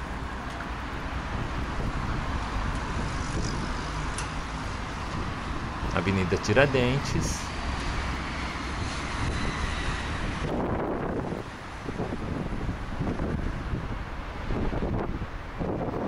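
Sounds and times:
road traffic noise: 0.0s - 16.0s
wind buffeting microphone: 0.0s - 16.0s.

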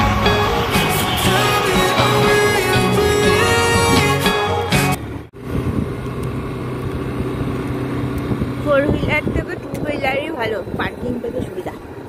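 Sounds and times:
motorbike engine and road noise: 0.0s - 12.0s.

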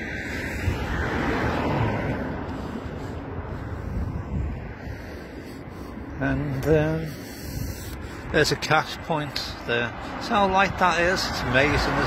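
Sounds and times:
car driving past: 0.0s - 2.6s
wind noise on microphone: 0.0s - 8.6s.

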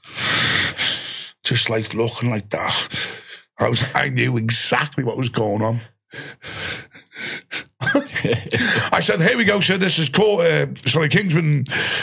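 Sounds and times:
man laughing breathily: 6.2s - 9.0s.

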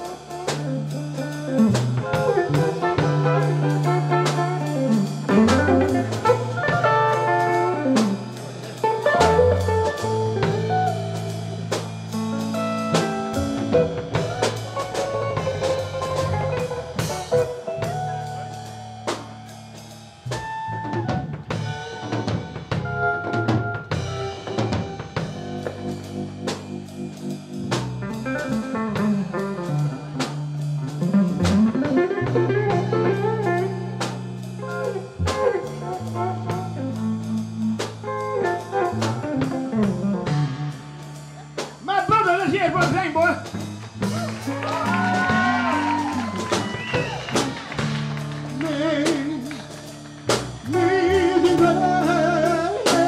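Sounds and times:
drum kit: 0.0s - 53.0s
electric bass: 0.0s - 53.0s
electric guitar lead lines: 0.0s - 53.0s.

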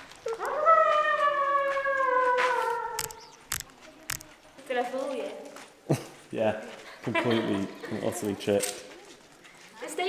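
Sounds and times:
sharp clicks: 3.0s - 4.4s.

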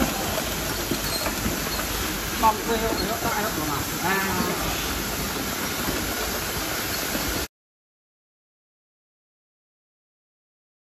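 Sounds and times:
hissing machinery noise: 0.0s - 7.5s.

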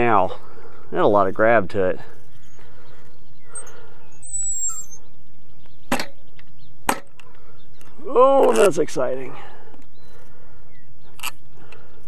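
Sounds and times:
small bird chirping: 2.2s - 8.1s.

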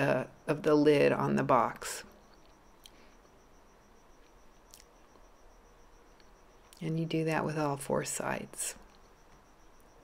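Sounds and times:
faint high whine: 0.0s - 10.0s.

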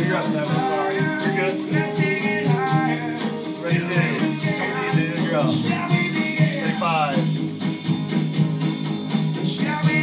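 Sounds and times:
acoustic guitar: 0.0s - 10.0s
drums: 0.0s - 10.0s
electric bass: 0.0s - 10.0s.

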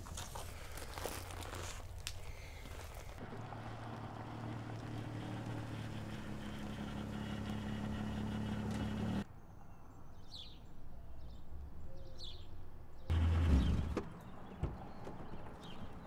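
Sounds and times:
vehicle engine humming: 3.0s - 9.3s, 13.1s - 16.0s.

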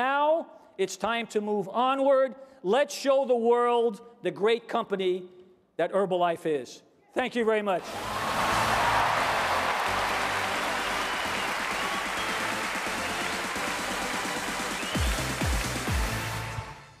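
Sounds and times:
audience applause: 7.8s - 16.4s
upbeat music with bass beat: 10.6s - 16.8s.

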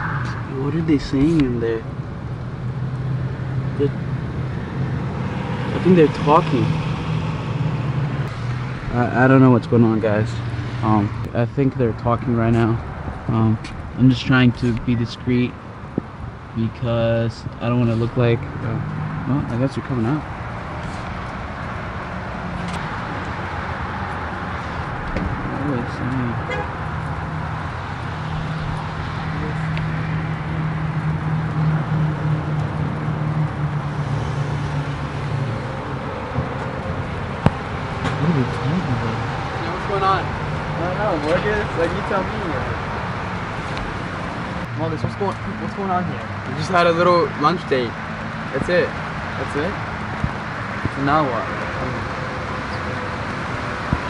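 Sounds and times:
road traffic noise: 0.0s - 54.0s
low engine hum: 20.6s - 45.3s.

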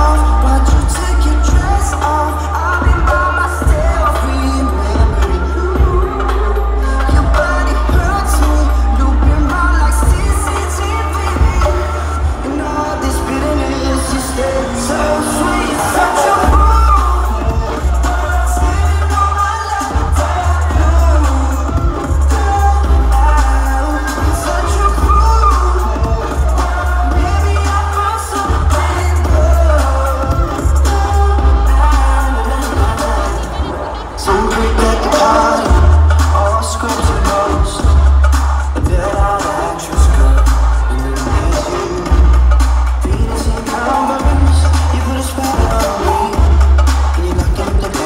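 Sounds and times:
electronic dance music with heavy bass: 0.0s - 48.0s
person singing: 0.0s - 48.0s.

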